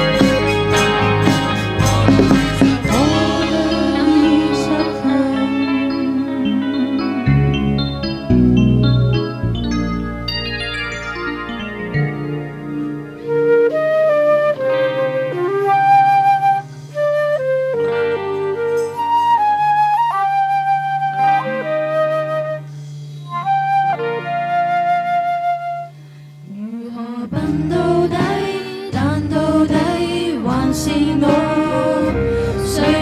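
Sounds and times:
voices singing: 0.0s - 7.4s, 26.5s - 33.0s
sustained low chords: 0.0s - 13.8s
flute playing slow melody: 11.0s - 26.2s.

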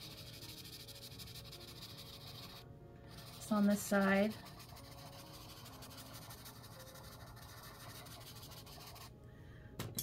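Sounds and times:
pencil scratching on paper: 0.0s - 9.1s.

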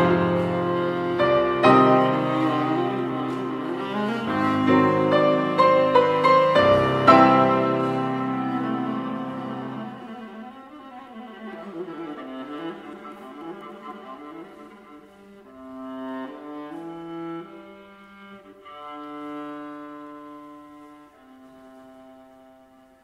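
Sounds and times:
bowed viola: 0.0s - 23.0s.

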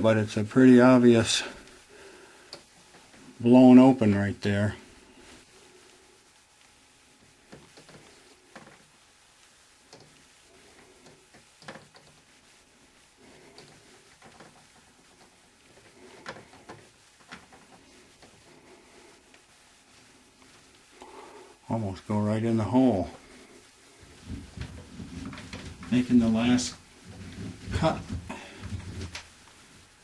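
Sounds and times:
soft clicks and knocks of handling: 9.9s - 10.3s, 11.0s - 12.3s.

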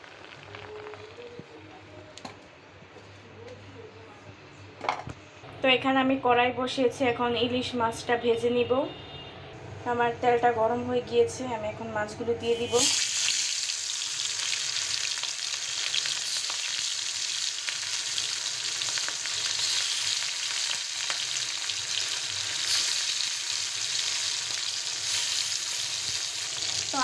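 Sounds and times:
fish frying in hot oil: 0.0s - 1.4s, 12.6s - 27.0s
sizzle with crackles and pops: 0.0s - 2.4s, 12.5s - 27.0s.

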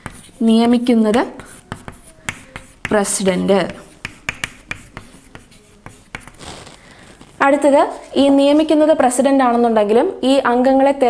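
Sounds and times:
chalk tapping and scratching: 0.0s - 6.8s, 7.8s - 8.8s.

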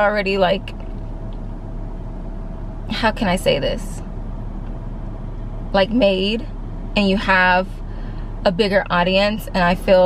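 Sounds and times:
car cabin low hum: 0.0s - 10.0s.

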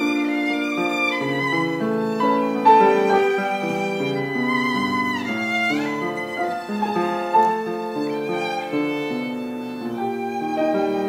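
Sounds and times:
piano accompaniment: 0.0s - 11.0s
violin slow melody: 0.0s - 11.0s.

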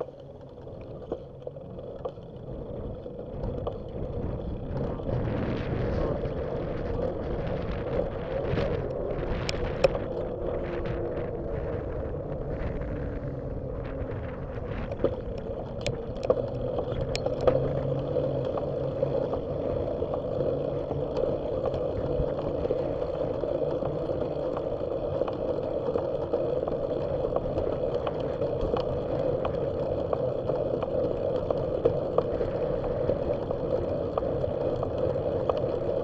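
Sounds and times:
bicycle road and wind noise: 0.0s - 36.0s
low traffic engine hum: 0.0s - 36.0s
sharp clicks and rattles: 0.0s - 36.0s.

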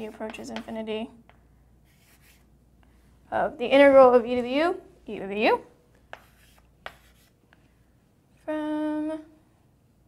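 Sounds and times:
pen tapping: 0.3s - 1.4s, 6.1s - 7.2s
faint pen rubbing: 1.8s - 2.5s, 6.1s - 7.4s.

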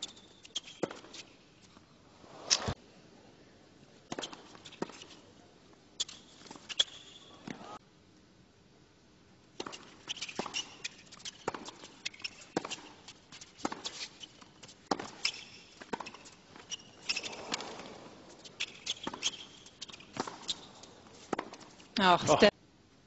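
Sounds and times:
shoe squeaks on court: 0.0s - 1.5s, 4.1s - 5.2s, 6.0s - 7.8s, 9.6s - 21.9s
racquet hitting tennis ball: 14.9s - 20.7s
tennis ball bouncing: 14.9s - 21.8s.

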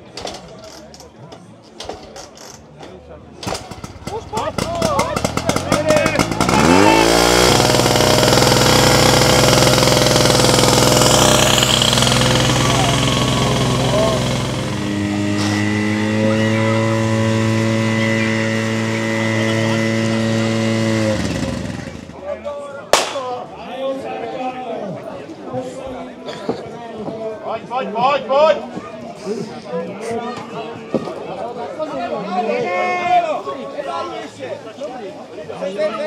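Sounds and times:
petrol engine starting and revving: 3.4s - 22.2s.

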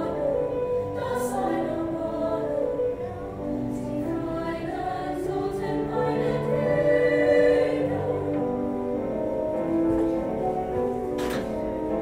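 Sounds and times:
choir singing held chords: 0.0s - 9.8s.

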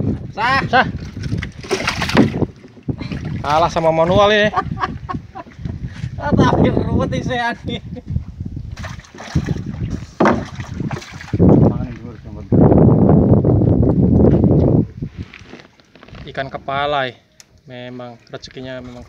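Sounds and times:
fish splashing in water: 1.3s - 3.6s, 8.8s - 11.4s
person laughing: 4.4s - 5.8s.

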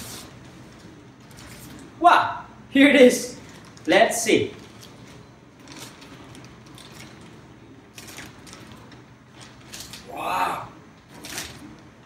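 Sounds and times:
plastic bag rustling: 3.4s - 10.1s, 11.0s - 12.0s.

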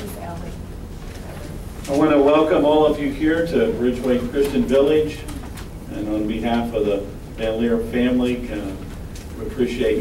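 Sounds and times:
man speaking: 1.9s - 5.3s, 5.9s - 8.8s, 9.4s - 10.0s.

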